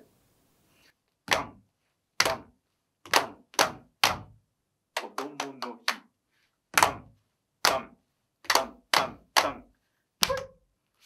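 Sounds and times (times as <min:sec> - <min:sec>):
hand claps: 0:01.3 - 0:01.6, 0:02.2 - 0:04.3, 0:05.0 - 0:06.1, 0:06.8 - 0:07.0, 0:07.6 - 0:09.6.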